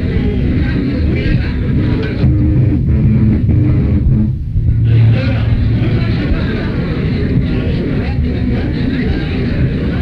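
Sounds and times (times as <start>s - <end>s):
rock band playing live: 2.2s - 6.6s.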